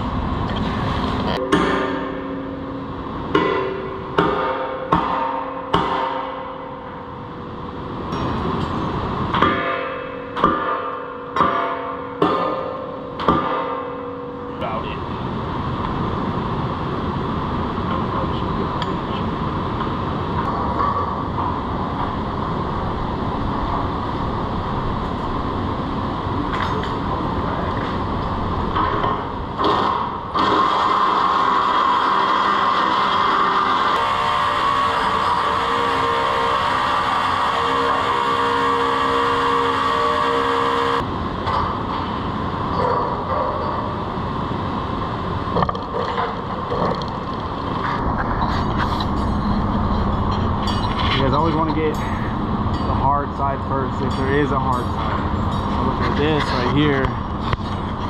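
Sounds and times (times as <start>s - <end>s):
machinery running: 0.0s - 58.0s
pitched machine hum: 0.0s - 58.0s.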